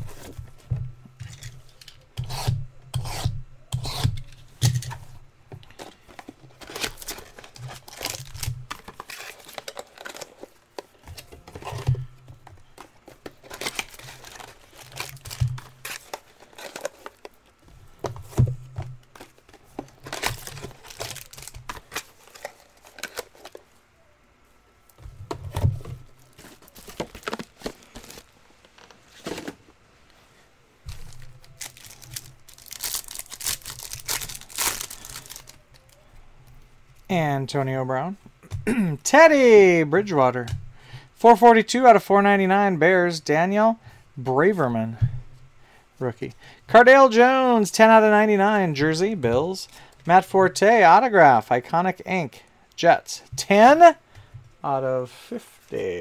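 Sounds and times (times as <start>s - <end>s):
cellophane crinkling: 5.6s - 18.4s, 19.0s - 23.8s, 26.0s - 29.6s, 30.9s - 36.1s.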